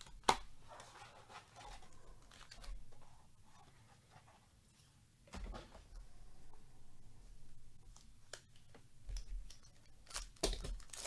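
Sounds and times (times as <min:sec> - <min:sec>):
card packs rustling and sliding: 0:00.0 - 0:03.2, 0:10.0 - 0:11.0.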